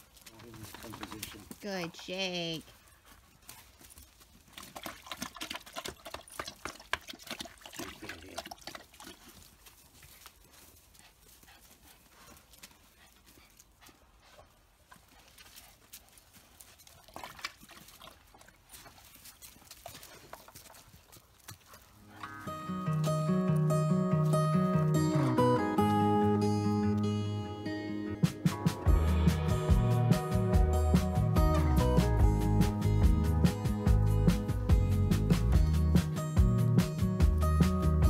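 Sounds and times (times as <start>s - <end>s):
dog lapping water: 4.5s - 9.5s, 16.8s - 20.8s
acoustic guitar music: 22.0s - 38.0s.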